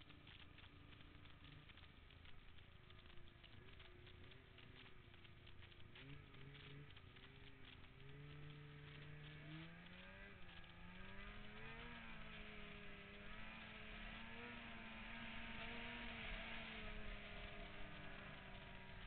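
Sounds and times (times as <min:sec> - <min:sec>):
snowmobile engine accelerating: 0:00.0 - 0:19.0.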